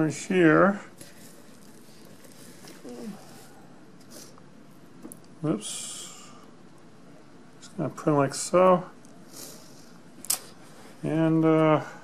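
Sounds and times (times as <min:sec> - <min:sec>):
soft brushing: 0:00.9 - 0:04.3.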